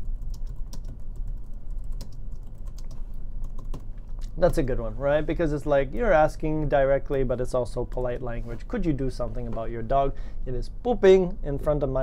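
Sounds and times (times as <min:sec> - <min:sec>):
keyboard typing: 0:00.0 - 0:03.9.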